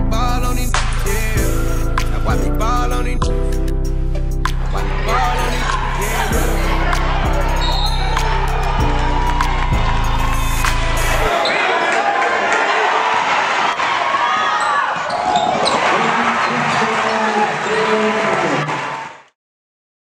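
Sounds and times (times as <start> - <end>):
hip-hop beat with heavy bass: 0.0 - 11.3
crowd voices: 4.6 - 18.8
sneakers squeaking: 6.9 - 8.8, 11.3 - 11.7, 14.2 - 18.0.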